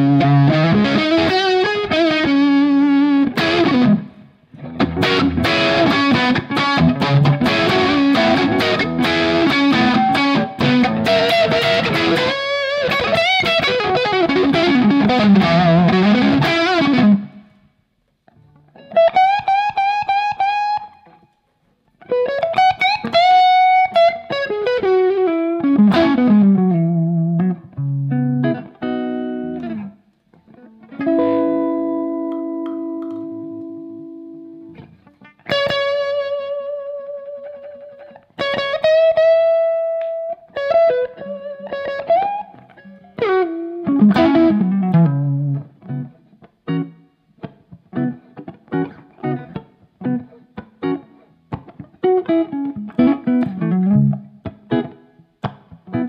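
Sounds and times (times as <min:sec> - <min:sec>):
overdriven electric guitar lead: 0:00.0 - 0:17.6, 0:18.3 - 0:21.4, 0:22.0 - 0:56.0.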